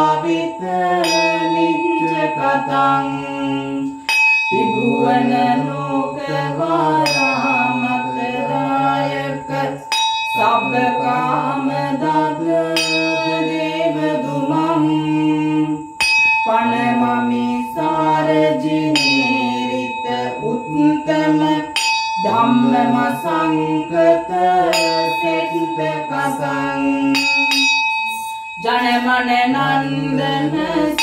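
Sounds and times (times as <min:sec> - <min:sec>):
bell ringing: 0:00.0 - 0:15.0, 0:15.8 - 0:31.0
person chanting verses: 0:00.0 - 0:31.0.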